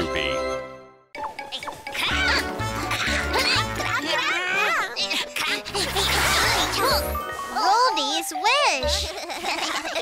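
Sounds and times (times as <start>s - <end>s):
cartoon jingle music: 0.0s - 4.2s.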